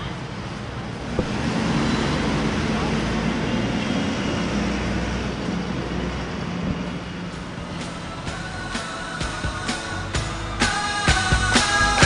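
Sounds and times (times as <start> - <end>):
bus diesel engine: 0.0 - 12.0
street traffic: 0.0 - 12.0.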